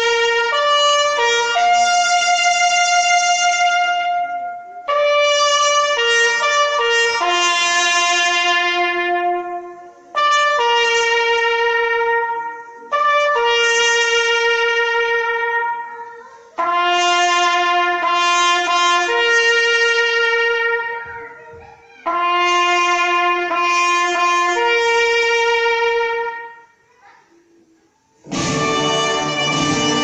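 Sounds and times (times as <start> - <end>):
solo trumpet long notes: 0.0 - 21.4, 22.0 - 26.8, 28.2 - 30.0.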